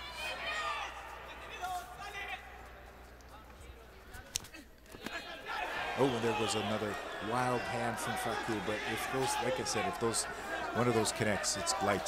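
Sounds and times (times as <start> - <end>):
arena noise: 0.0 - 12.0
voices shouting: 5.0 - 12.0.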